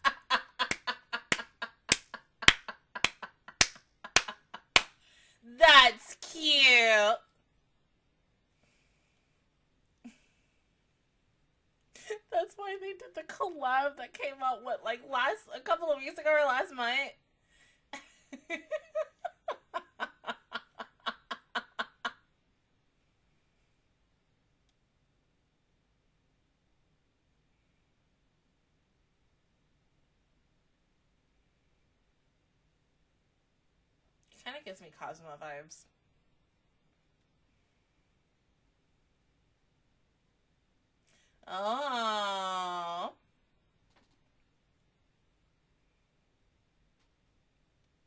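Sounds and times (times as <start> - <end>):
woman laughing: 0.0 - 4.8, 18.0 - 22.1
sharp hand claps: 0.0 - 5.0.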